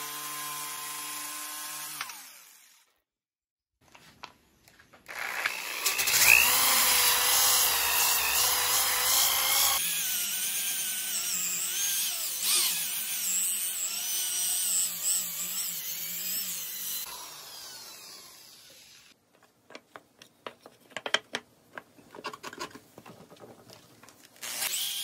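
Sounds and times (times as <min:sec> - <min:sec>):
electric drill sanding wood: 0:05.1 - 0:19.2, 0:24.4 - 0:25.0.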